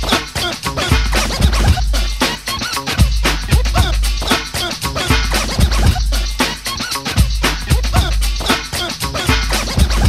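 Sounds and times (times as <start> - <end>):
hip hop drum beat with bass: 0.0 - 10.0
turntable scratching: 0.0 - 10.0.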